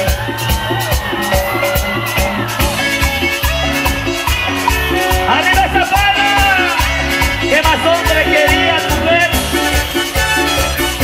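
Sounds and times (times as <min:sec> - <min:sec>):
band playing latin dance music: 0:00.0 - 0:11.0.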